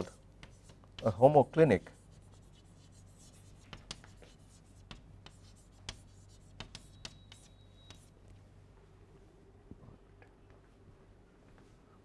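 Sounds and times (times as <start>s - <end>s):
chalk tapping and scratching: 0.0s - 8.2s.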